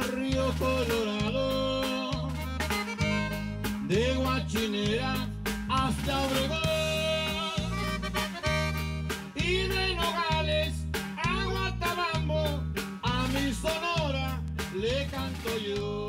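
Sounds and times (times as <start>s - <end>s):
button accordion melody: 0.0s - 5.2s, 5.8s - 12.0s
acoustic guitar: 0.0s - 16.0s
electric bass: 0.0s - 16.0s.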